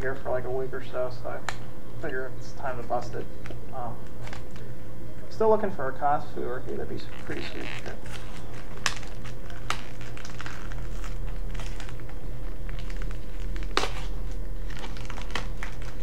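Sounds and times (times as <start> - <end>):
low hum: 0.0 - 16.0
card pack packaging tearing: 6.9 - 16.0.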